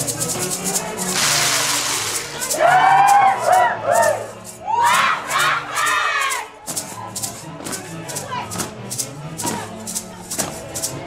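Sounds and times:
band music: 0.0s - 11.0s
hissing rattle burst: 1.0s - 2.6s
dancers shouting whoops: 2.6s - 5.4s.

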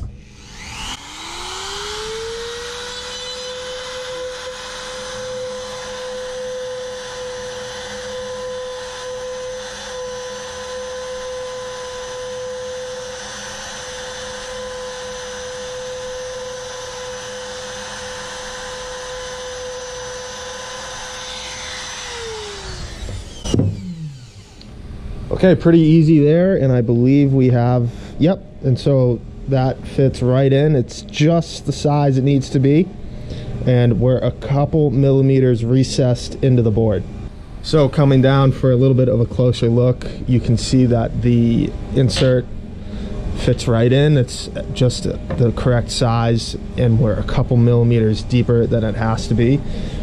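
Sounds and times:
trim router whining: 0.0s - 25.0s, 30.9s - 50.0s.

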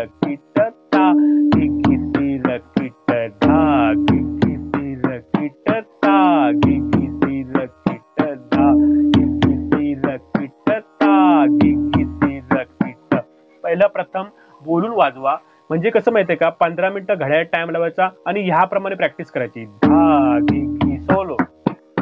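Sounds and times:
pakhawaj drumming: 0.0s - 13.3s, 18.2s - 22.0s.

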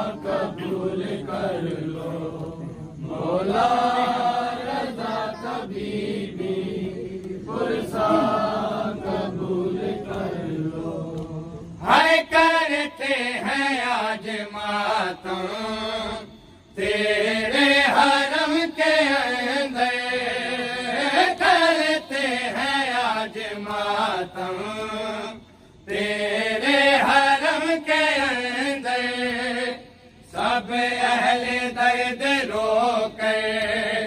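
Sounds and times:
men chanting a lament: 0.0s - 34.0s.

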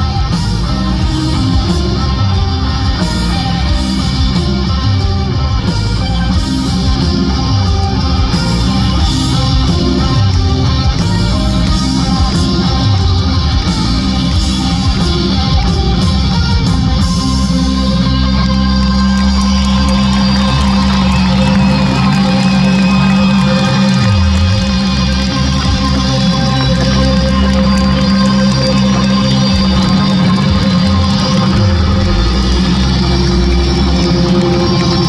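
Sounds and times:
rock band playing live: 0.0s - 35.0s.

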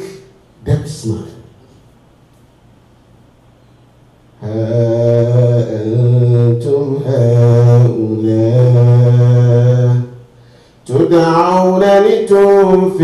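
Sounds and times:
man chanting: 0.0s - 1.6s, 4.4s - 10.2s, 10.9s - 13.0s.

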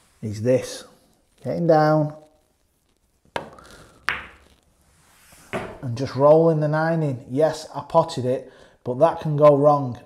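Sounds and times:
pool balls clicking together: 3.4s - 4.6s
cue tip striking ball: 4.1s - 4.5s, 5.5s - 5.8s.

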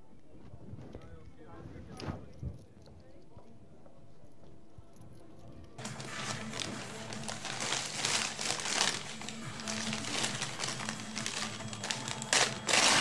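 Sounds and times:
paper crumpling: 5.8s - 13.0s
paper packaging rustling: 5.8s - 13.0s.

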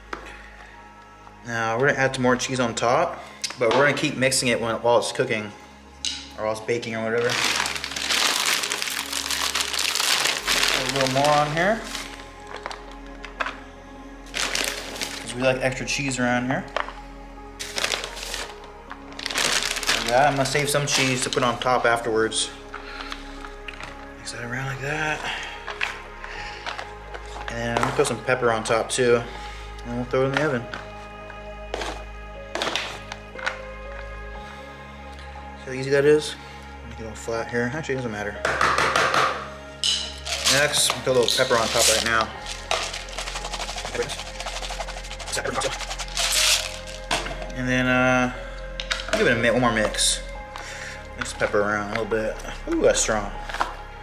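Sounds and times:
background music with held notes: 0.0s - 54.0s
plastic bag crinkling: 7.2s - 13.6s, 14.3s - 15.4s, 17.6s - 21.6s, 40.2s - 47.5s
wooden spoon scraping foil pan: 40.2s - 47.4s.

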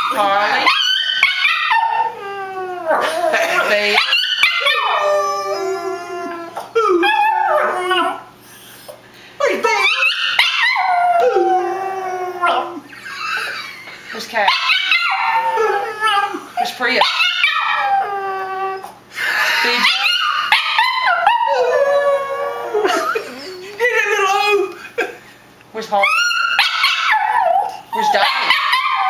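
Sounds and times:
dog howling: 4.0s - 8.3s, 9.8s - 12.8s, 14.7s - 19.0s.

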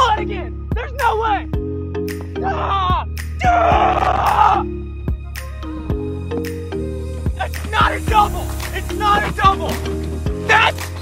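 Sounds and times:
background music with steady beat: 0.0s - 11.0s
man yelling in frustration: 2.4s - 4.7s.

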